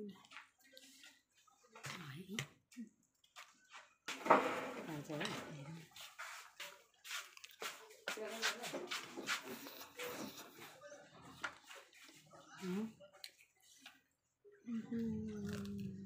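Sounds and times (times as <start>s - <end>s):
crunchy snack being chewed: 7.2s - 7.8s, 15.3s - 16.0s
murmured voices: 8.6s - 13.0s, 14.6s - 16.0s.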